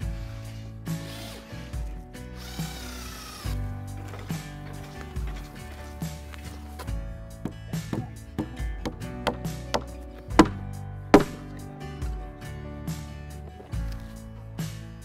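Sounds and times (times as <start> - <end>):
background music: 0.0 - 15.0
hammer blows on wooden board: 7.4 - 11.6.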